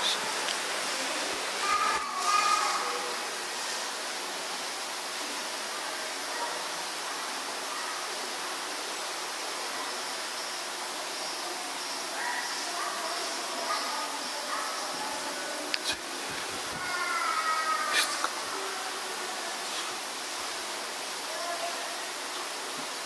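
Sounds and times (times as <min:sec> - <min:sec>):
steady background hiss: 0:00.0 - 0:23.0
murmured words: 0:11.5 - 0:20.1.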